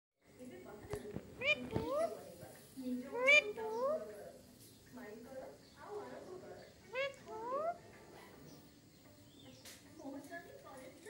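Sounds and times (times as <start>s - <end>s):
parakeet squawking: 1.3s - 2.2s, 3.1s - 4.0s, 6.9s - 7.8s.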